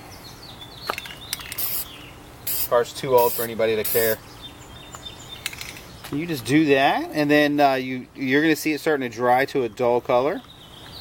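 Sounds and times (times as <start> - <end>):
aerosol spray can hiss: 1.5 - 1.9, 2.5 - 4.2.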